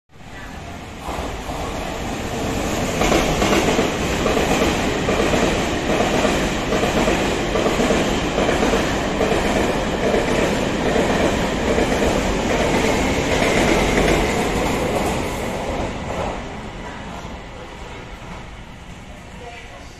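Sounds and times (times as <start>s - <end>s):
train passing at high speed: 0.2s - 19.9s.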